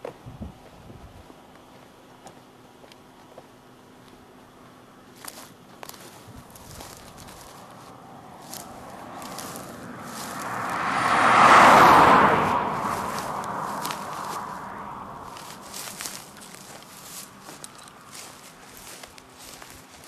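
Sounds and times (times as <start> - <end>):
vehicle passing at speed: 6.4 - 18.8.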